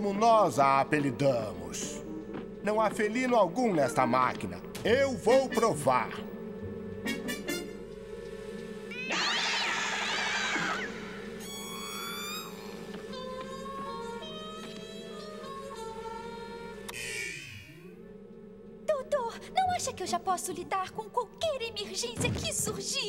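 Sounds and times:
low machine hum: 0.0 - 23.0
cat-like yowl sound effect: 8.9 - 12.5.

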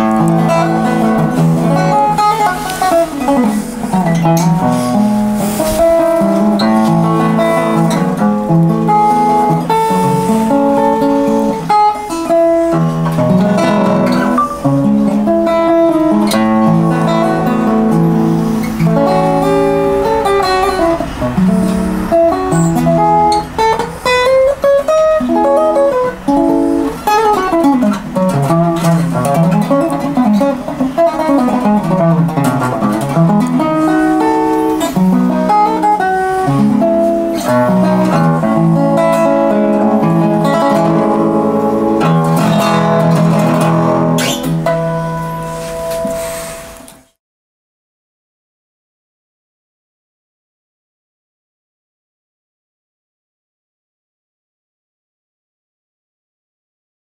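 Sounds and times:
fingerpicked resonator guitar: 0.0 - 47.2.

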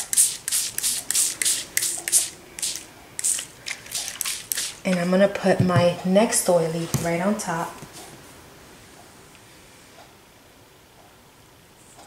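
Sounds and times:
spray bottle squirting: 0.0 - 5.0.

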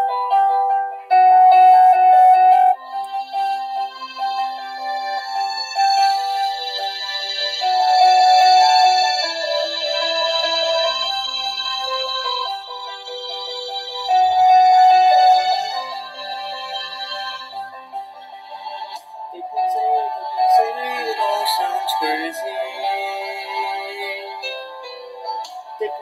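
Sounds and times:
musical accompaniment: 0.0 - 26.0
choir singing long notes: 18.4 - 24.6.

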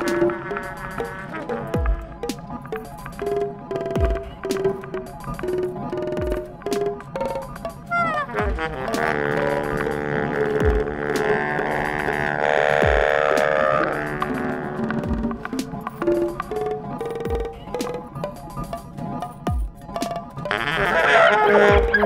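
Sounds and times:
guitar notes: 0.0 - 22.0.

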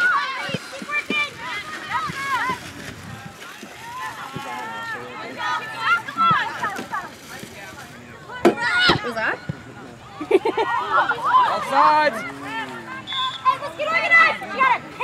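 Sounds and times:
girls calling and shouting: 0.0 - 7.3, 8.2 - 15.0.

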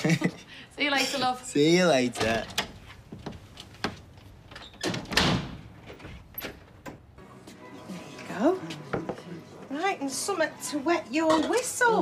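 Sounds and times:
door shutting: 3.8 - 7.2.

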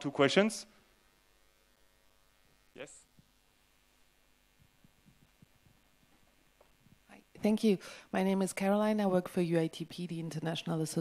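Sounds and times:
faint low thumps: 4.5 - 7.4.

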